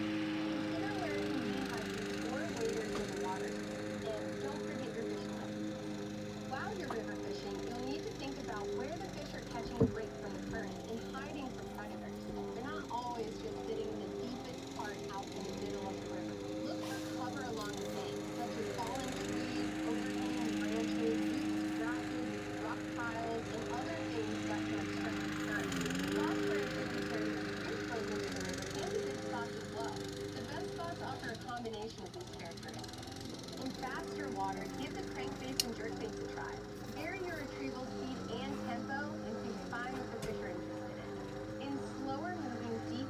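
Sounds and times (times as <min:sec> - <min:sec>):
lawn mower engine running: 0:00.0 - 0:43.0.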